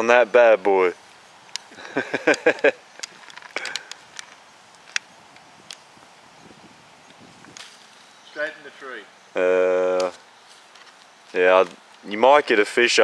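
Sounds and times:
sharp light clicks: 1.4s - 5.9s
man laughing: 1.7s - 2.9s.

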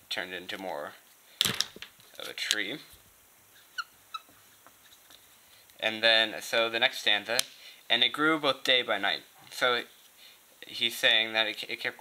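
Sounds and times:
marker squeaking on board: 3.5s - 5.1s.

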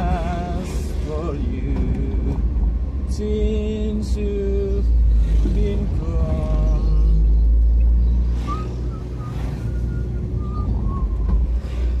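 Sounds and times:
vehicle engine noise: 0.0s - 12.0s
faint wavering whistle-like tones: 6.6s - 12.0s
wind rumble: 7.4s - 12.0s.

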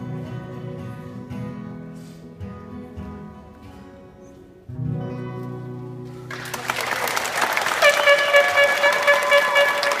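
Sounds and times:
audience applause: 6.3s - 10.0s
high-pitched call from crowd: 7.3s - 10.0s.

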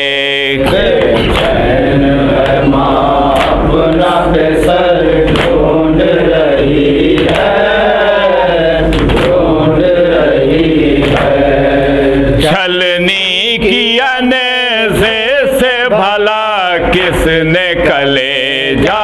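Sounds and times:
man singing: 0.0s - 5.2s, 12.4s - 19.0s
men chanting a lament: 0.0s - 19.0s
steady low hum: 0.0s - 19.0s.

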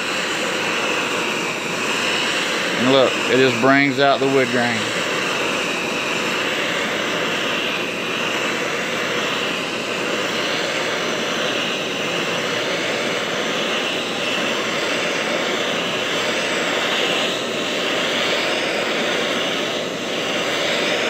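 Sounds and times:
gas torch hissing: 0.0s - 21.0s.

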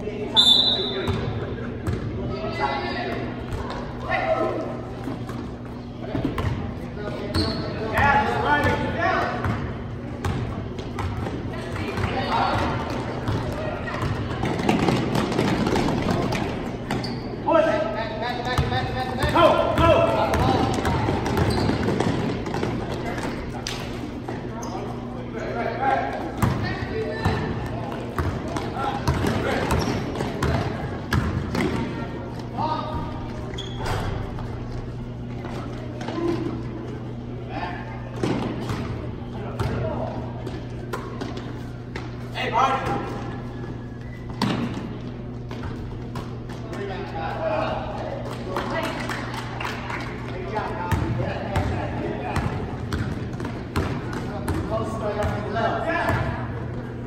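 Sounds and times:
basketball bouncing on court: 6.1s - 17.2s, 18.5s - 23.6s, 26.4s - 32.0s, 50.9s - 56.4s.

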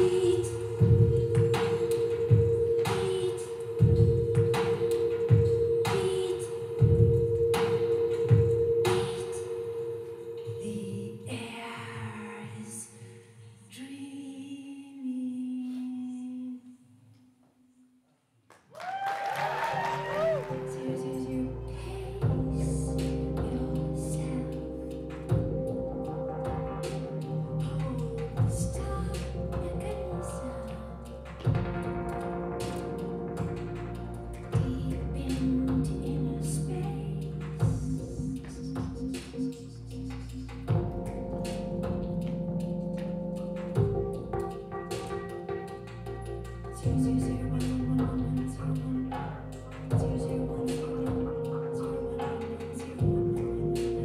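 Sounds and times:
deep sustained bass notes: 0.0s - 5.9s, 20.2s - 54.0s
processed sound with sliding pitches: 19.8s - 54.0s.

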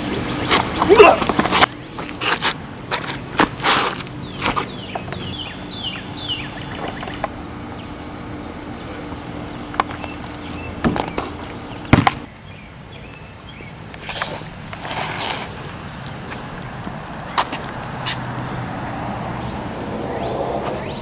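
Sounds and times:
scuffs: 0.4s - 5.3s, 14.0s - 18.3s
basketball striking hard: 11.9s - 12.3s.

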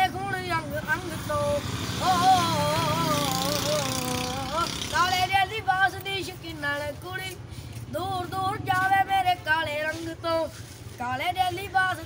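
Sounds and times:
boy singing unaccompanied: 0.0s - 12.0s.

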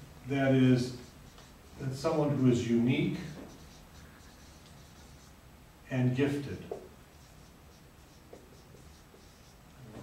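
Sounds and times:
marker writing on whiteboard: 0.6s - 5.5s, 6.3s - 10.0s.

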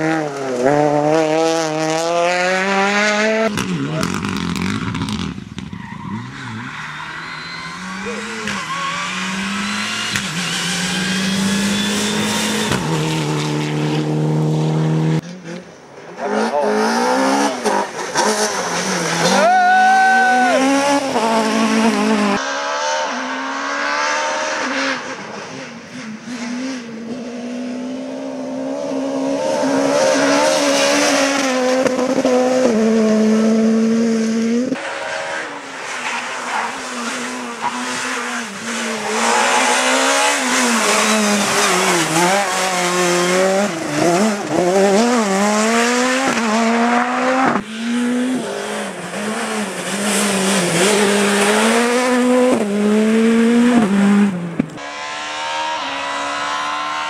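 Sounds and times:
rally car engines revving hard: 0.0s - 57.0s.

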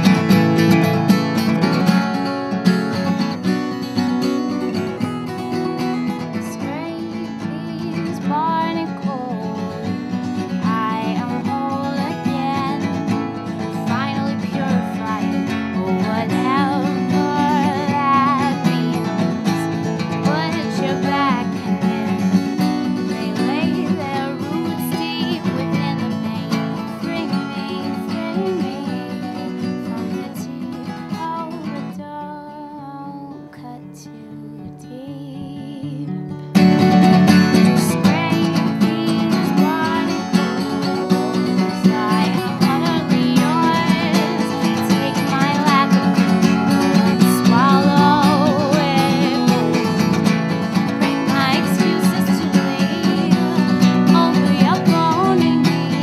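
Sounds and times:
acoustic guitar strumming: 0.0s - 56.0s
woman singing: 0.0s - 56.0s.

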